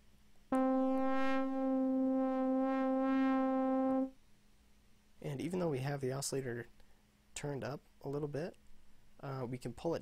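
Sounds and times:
sustained synthesizer note: 0.6s - 4.1s.

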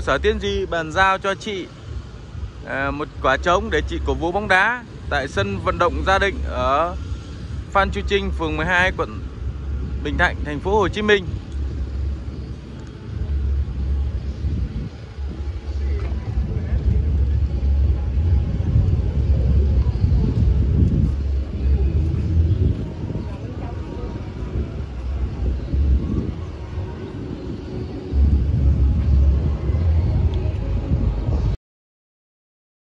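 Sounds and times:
faint street traffic: 0.0s - 31.6s
wind buffeting microphone: 0.0s - 31.6s.

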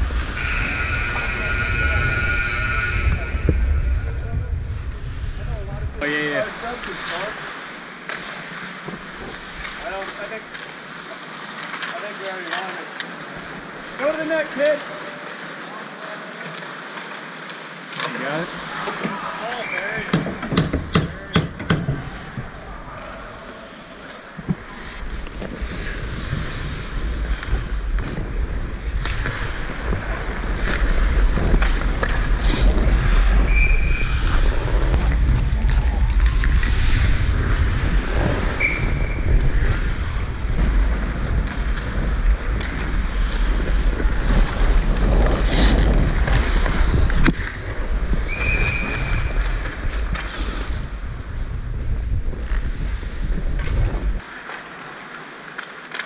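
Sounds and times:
wind buffeting microphone: 0.0s - 6.8s, 25.6s - 54.2s
skates scraping ice: 0.0s - 56.0s.

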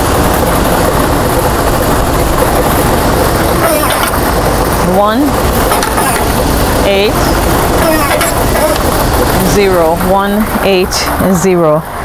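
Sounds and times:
blower-like rush of air: 0.0s - 12.0s.

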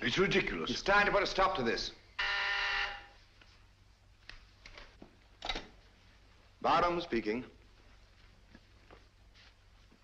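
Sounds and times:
desk telephone ringing: 2.2s - 3.1s.

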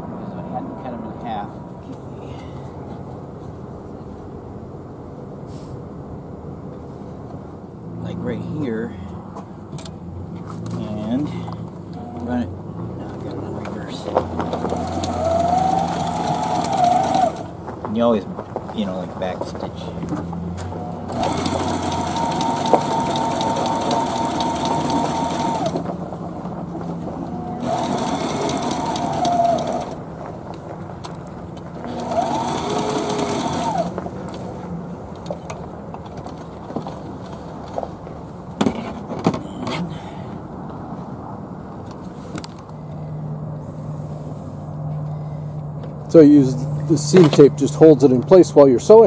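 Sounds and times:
sewing machine stitching: 14.4s - 17.5s, 20.9s - 25.9s, 27.6s - 30.0s, 31.8s - 34.0s.

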